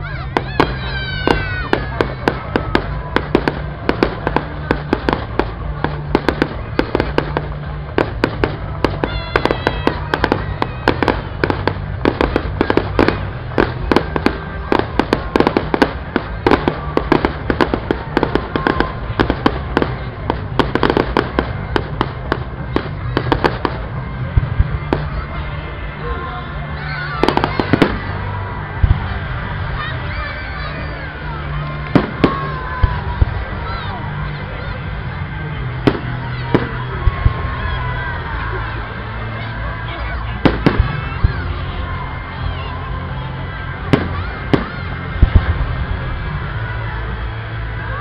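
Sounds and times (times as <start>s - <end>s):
fireworks bursts and crackling: 0.0s - 48.0s
fireworks whistles: 0.3s - 23.9s.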